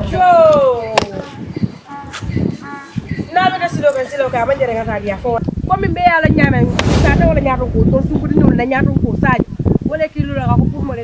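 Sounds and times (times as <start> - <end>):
sharp smack: 6.7 - 7.7.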